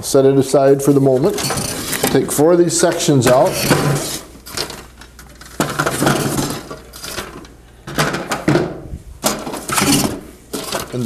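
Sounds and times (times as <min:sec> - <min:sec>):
hard plastic clattering: 0:03.2 - 0:11.0.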